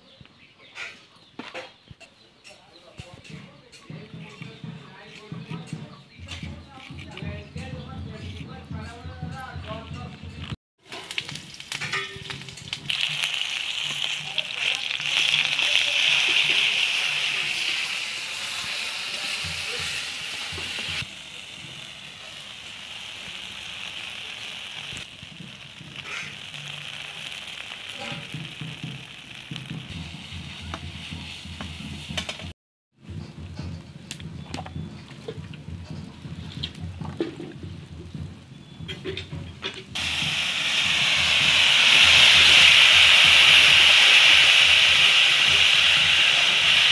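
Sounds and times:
food sizzling in hot oil: 0:10.8 - 0:32.5, 0:40.0 - 0:46.9
metal spatula scraping pan: 0:26.0 - 0:26.5.

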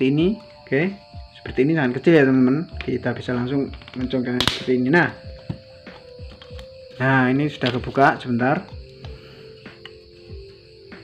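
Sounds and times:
plastic dome clicking loose: 0:03.7 - 0:04.7.

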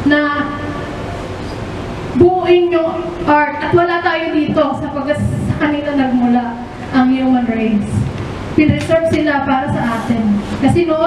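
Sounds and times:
woman speaking into a microphone: 0:00.0 - 0:00.9, 0:02.2 - 0:11.0
steady hiss with low rumble: 0:00.0 - 0:11.0.

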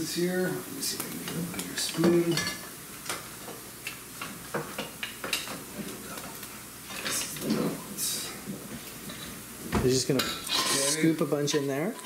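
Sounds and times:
utensils clinking against pots: 0:01.3 - 0:03.2, 0:10.1 - 0:12.0.

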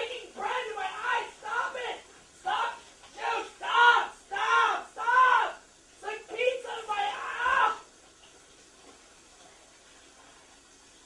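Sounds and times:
person screaming: 0:00.4 - 0:05.6, 0:06.6 - 0:07.9.

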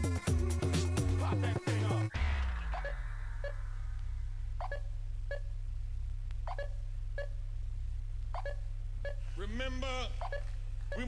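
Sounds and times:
deep bass hum: 0:00.0 - 0:11.0
throbbing low pulse: 0:02.2 - 0:09.3.

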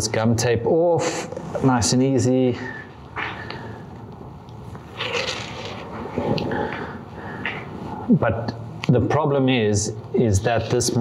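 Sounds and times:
paper tape tearing off: 0:05.0 - 0:05.9.

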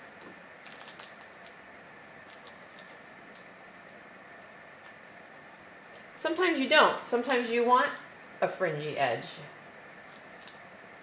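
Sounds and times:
steady low hiss: 0:00.0 - 0:11.0.

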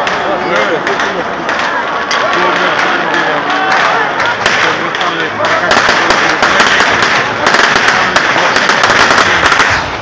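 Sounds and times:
fireworks crackling: 0:00.0 - 0:10.0.

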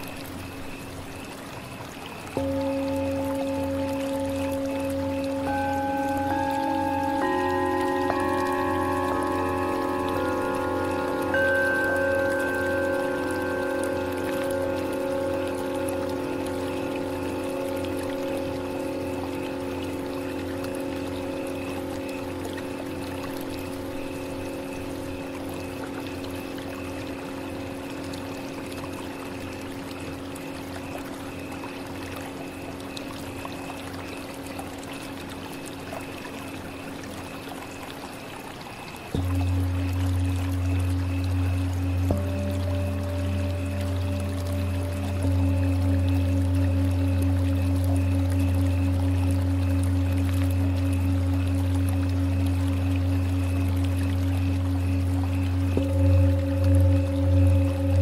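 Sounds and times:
flowing water: 0:00.0 - 0:58.0
singing bowls ringing: 0:00.0 - 0:58.0.

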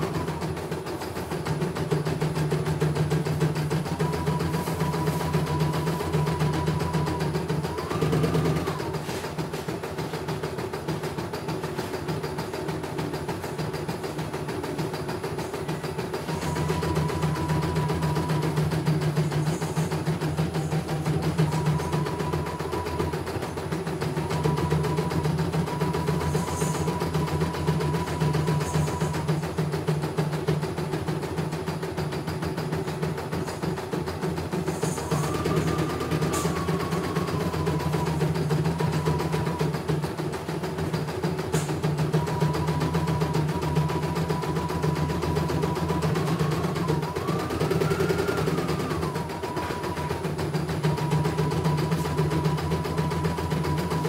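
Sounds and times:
embroidery machine stitching: 0:00.0 - 0:54.0.

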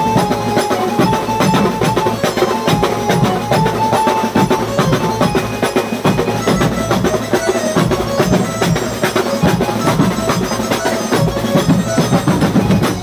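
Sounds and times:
bass drums and snare drums: 0:00.0 - 0:13.0
held-note melody: 0:00.0 - 0:13.0.

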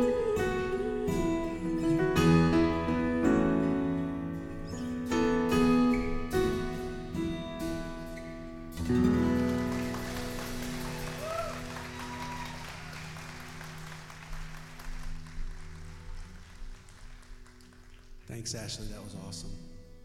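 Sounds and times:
acoustic guitar: 0:00.0 - 0:20.0
audience applauding: 0:09.0 - 0:18.6.

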